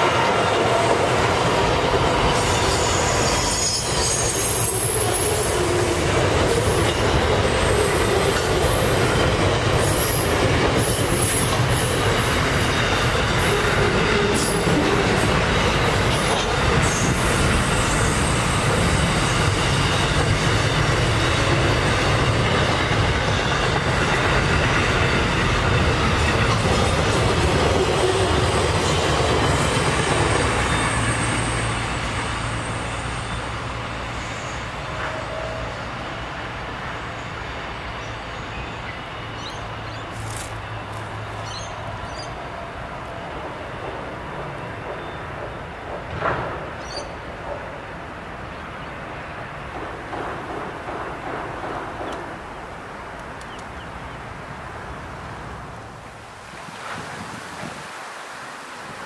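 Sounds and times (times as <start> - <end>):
freight train wheels on rails: 0.0 - 57.8
steel wheel squeal: 2.0 - 9.0, 16.2 - 22.4.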